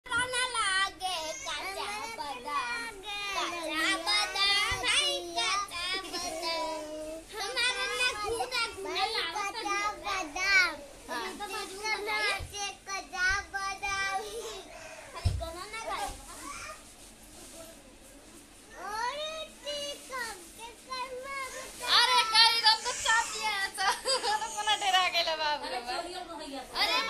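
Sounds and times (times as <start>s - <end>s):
young children chattering: 0.1s - 27.0s.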